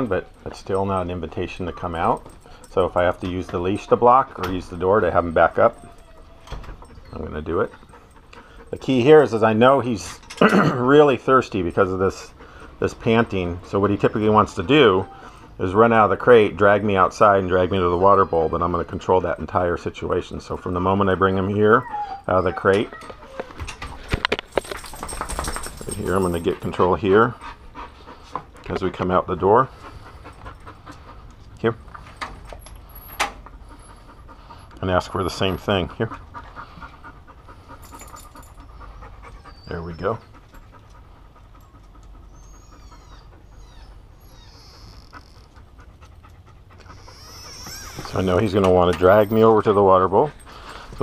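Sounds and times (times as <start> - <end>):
dog panting heavily: 0.0 - 51.0
dog claws clicking: 22.8 - 26.6.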